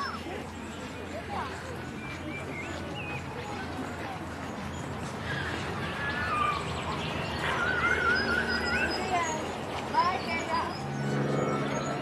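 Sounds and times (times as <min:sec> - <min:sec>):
birds warbling whistles: 0:04.6 - 0:12.0.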